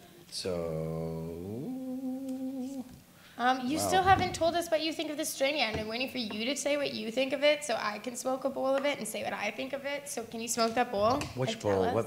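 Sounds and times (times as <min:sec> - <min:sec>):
person humming rising note: 0:00.8 - 0:02.9.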